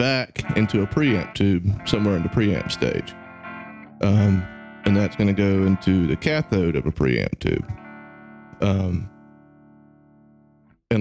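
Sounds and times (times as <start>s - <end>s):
electric guitar chord ringing: 0.4s - 10.7s.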